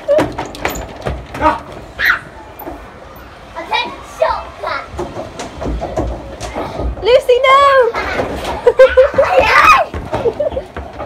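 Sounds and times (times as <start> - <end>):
children calling and squealing: 1.5 - 5.4, 7.6 - 10.7.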